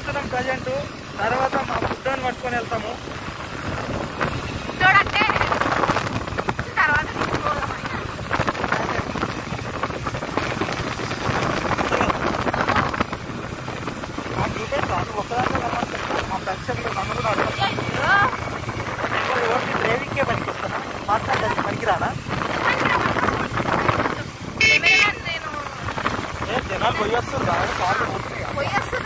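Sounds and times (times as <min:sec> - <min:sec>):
people talking: 0:00.0 - 0:03.0, 0:04.8 - 0:05.6, 0:06.6 - 0:08.1, 0:08.7 - 0:09.2, 0:11.8 - 0:12.9, 0:14.3 - 0:18.4, 0:19.1 - 0:29.0
motorbike running: 0:00.0 - 0:29.0
wind on microphone: 0:02.8 - 0:29.0.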